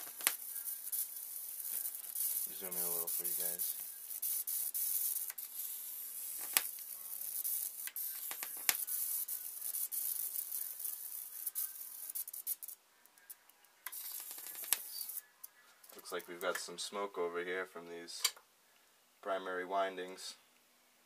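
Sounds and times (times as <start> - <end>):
electric arc hissing and snapping: 0.0 - 15.3.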